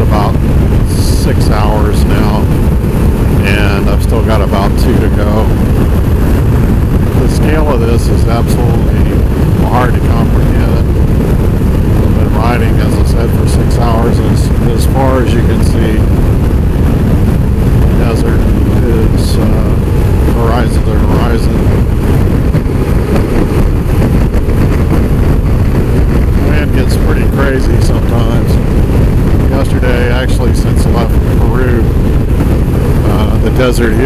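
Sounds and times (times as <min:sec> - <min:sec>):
motorcycle engine cruising: 0:00.0 - 0:34.0
wind buffeting microphone: 0:00.0 - 0:34.0.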